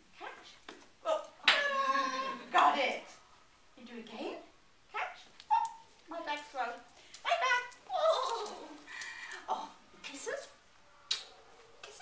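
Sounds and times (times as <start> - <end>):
dog barking and yelping: 5.5 - 5.9.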